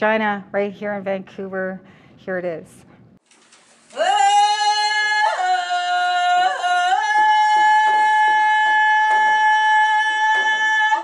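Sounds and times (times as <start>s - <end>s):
woman singing a long note: 4.0s - 11.0s.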